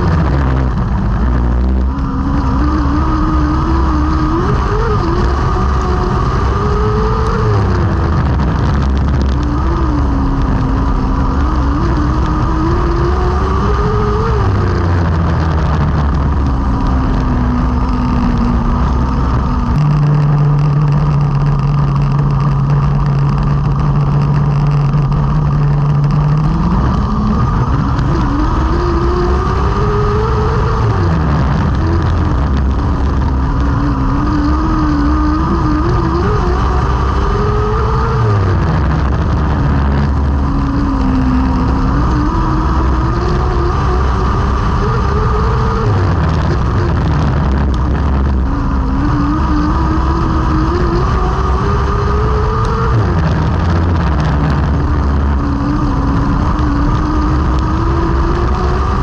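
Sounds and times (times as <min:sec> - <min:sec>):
racing car engine revving: 0:00.0 - 0:59.0.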